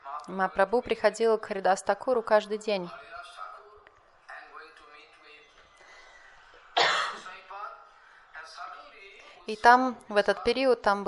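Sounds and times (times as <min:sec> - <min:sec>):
person clearing throat: 0:06.8 - 0:07.3
person coughing: 0:06.8 - 0:07.3.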